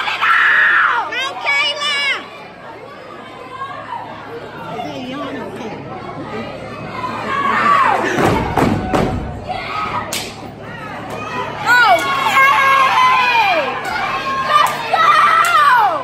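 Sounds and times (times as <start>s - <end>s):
audience chatter and shouts: 0.0s - 16.0s.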